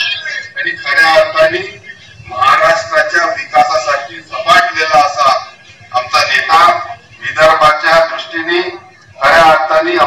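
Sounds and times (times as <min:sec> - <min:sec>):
man speaking into a microphone: 0:00.0 - 0:10.0.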